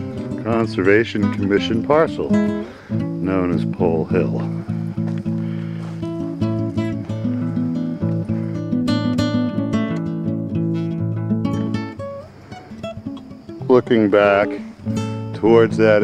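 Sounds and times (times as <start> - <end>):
plucked acoustic guitar: 0.0 - 16.0.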